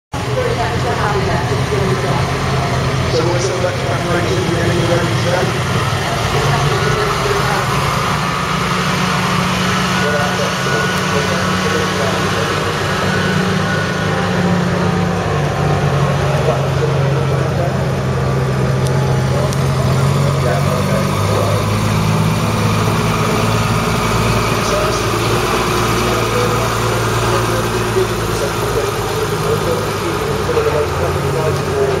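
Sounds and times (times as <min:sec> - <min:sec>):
heavy truck engines running: 0:00.1 - 0:32.0
people chattering: 0:00.2 - 0:32.0.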